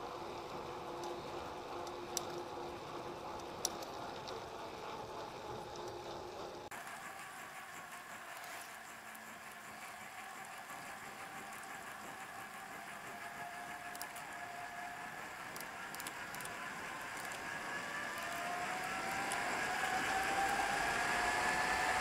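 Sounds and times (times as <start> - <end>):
tyres humming on asphalt: 0.0 - 22.0.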